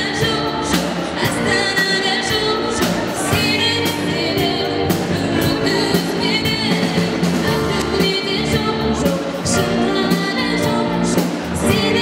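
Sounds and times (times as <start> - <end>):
pop-rock band playing: 0.0 - 12.0
woman singing lead: 0.0 - 12.0.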